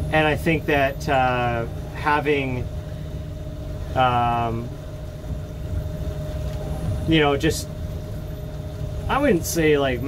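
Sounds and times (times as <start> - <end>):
boat motor low rumble: 0.0 - 10.0
thin electric whine: 0.0 - 10.0.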